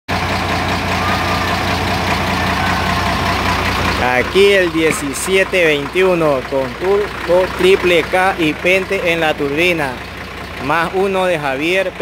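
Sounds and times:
bus diesel engine idling: 0.1 - 12.0
turbocharger whistle: 0.6 - 6.2.

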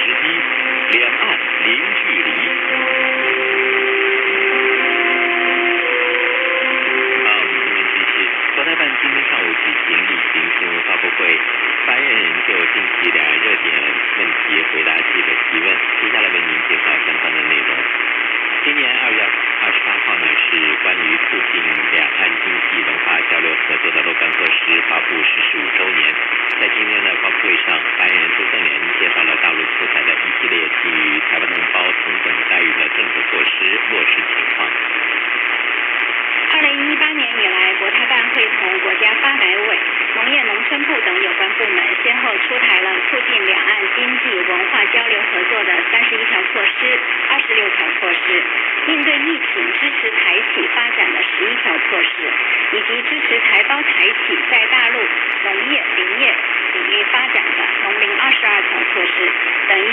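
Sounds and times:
musical notes: 0.0 - 8.6
person talking on radio: 0.0 - 35.1, 36.5 - 59.9
radio static and hiss: 0.0 - 59.9.

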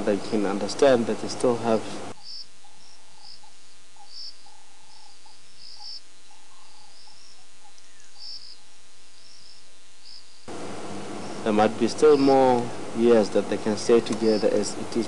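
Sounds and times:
background hiss: 0.0 - 15.0
crickets chirping: 0.0 - 15.0.

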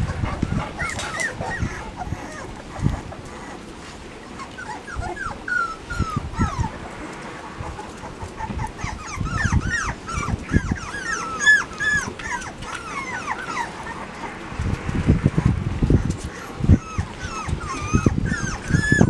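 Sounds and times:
puppies whimpering and squeaking: 0.0 - 19.0.

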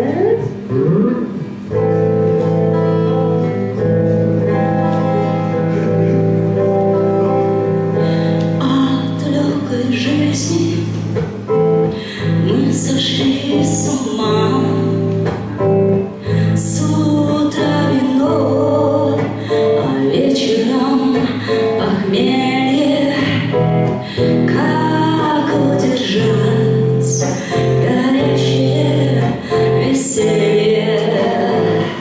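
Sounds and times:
electric guitar: 0.0 - 32.0
woman singing into a microphone: 5.3 - 32.0.

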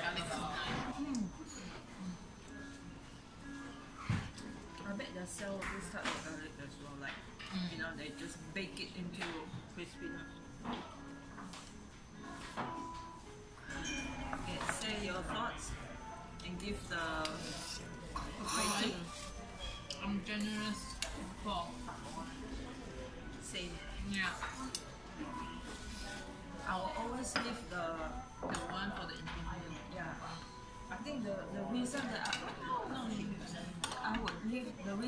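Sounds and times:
tableware clinking: 12.3 - 15.5, 16.4 - 22.4, 31.8 - 34.5
utensils clinking on metal pot: 13.7 - 15.0, 17.0 - 21.3.

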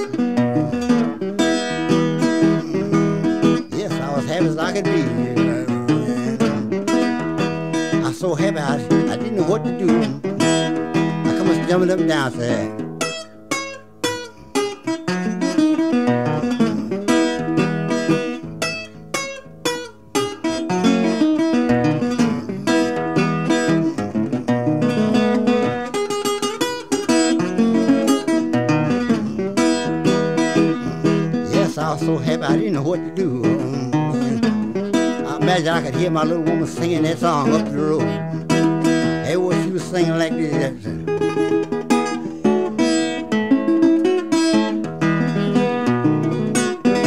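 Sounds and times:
acoustic blues guitar picking: 0.0 - 47.0.

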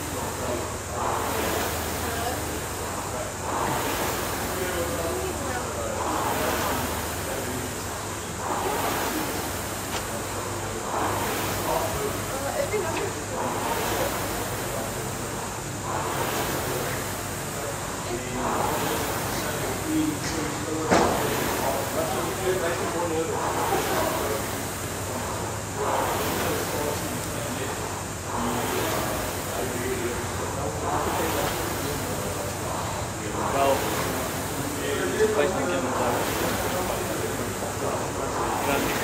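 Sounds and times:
rowing machine flywheel whooshing: 0.0 - 39.0.

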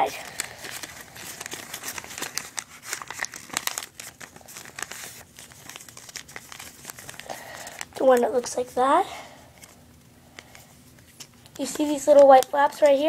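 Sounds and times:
paper rustling and crinkling: 0.0 - 8.9, 9.6 - 9.8, 10.4 - 13.0.

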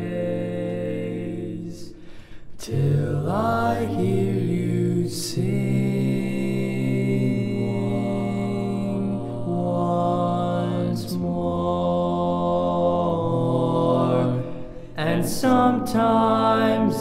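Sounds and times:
male a cappella harmony singing: 0.0 - 17.0.

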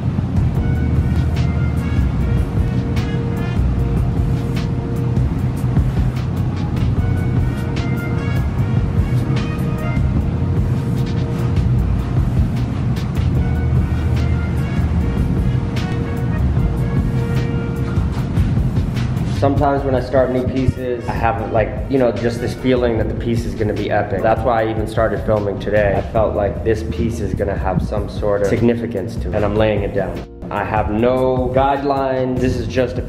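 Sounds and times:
music with heavy bass: 0.0 - 33.0.

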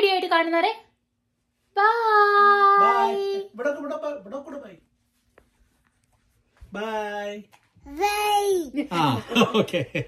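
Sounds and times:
person calling out bye: 2.5 - 3.5.

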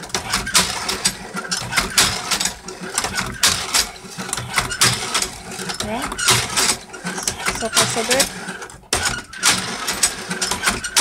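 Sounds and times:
cherry pitter clacks and knocks: 0.0 - 11.0.

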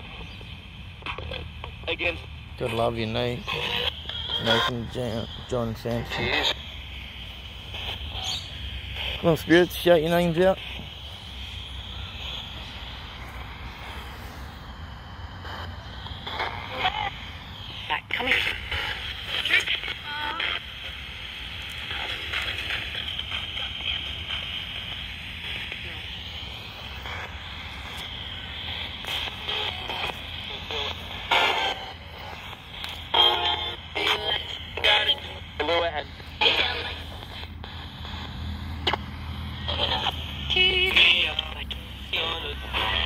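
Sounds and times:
music fragments on radio: 0.0 - 43.0
radio static hiss: 0.0 - 43.0
voice fragments on radio: 0.9 - 43.0.

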